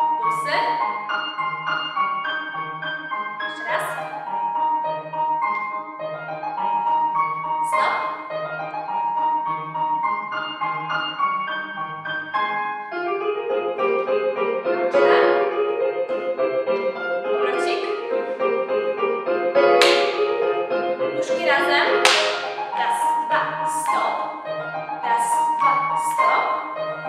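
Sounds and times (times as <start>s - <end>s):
piano music: 0.0s - 27.0s.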